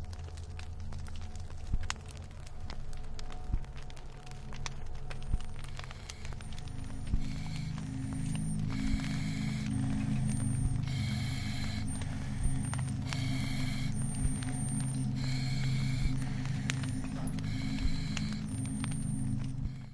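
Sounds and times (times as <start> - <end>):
low hum: 0.0 - 19.9.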